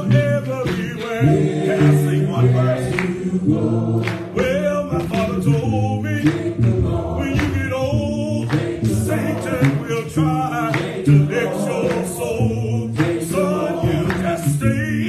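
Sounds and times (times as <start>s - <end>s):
congregation singing gospel song: 0.0s - 15.0s.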